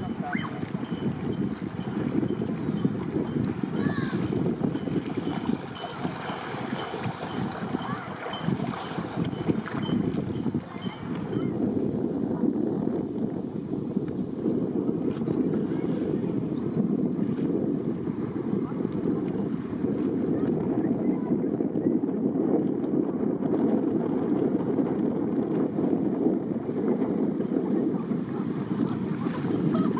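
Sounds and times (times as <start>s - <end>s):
outboard motor running: 0.0s - 11.6s
wind buffeting microphone: 0.0s - 29.9s.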